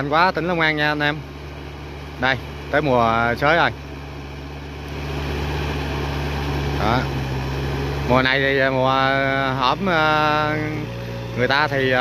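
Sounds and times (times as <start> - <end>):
tractor diesel engine drone: 0.0 - 12.0.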